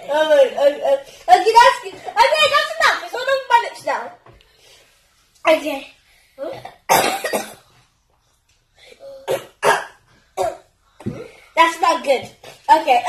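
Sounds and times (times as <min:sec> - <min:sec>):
child coughing: 0:06.4 - 0:07.7, 0:09.0 - 0:11.3.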